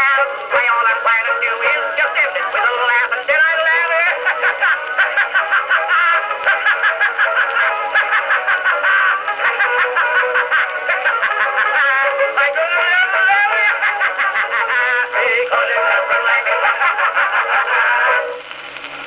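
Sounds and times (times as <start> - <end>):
cylinder surface hiss: 0.0 - 19.0
orchestra and voices on phonograph: 0.0 - 19.0
phonograph running noise: 0.0 - 19.0.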